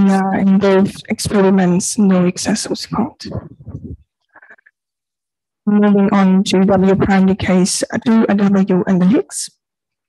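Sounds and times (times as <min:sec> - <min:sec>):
woman speaking: 0:00.0 - 0:04.6, 0:05.7 - 0:09.5.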